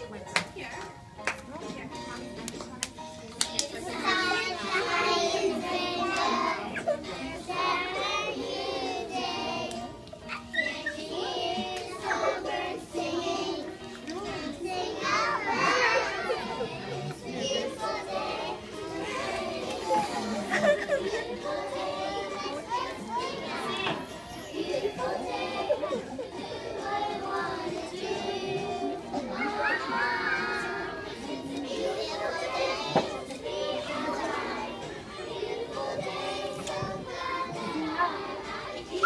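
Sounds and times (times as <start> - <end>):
young children's voices: 3.6 - 39.0.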